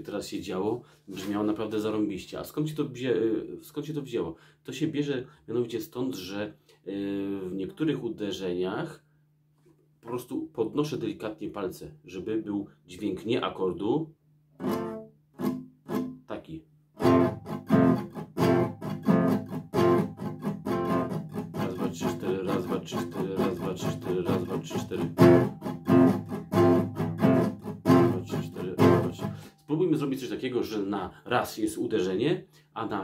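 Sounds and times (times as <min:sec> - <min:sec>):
classical guitar strumming: 0:14.6 - 0:16.2, 0:17.0 - 0:29.7.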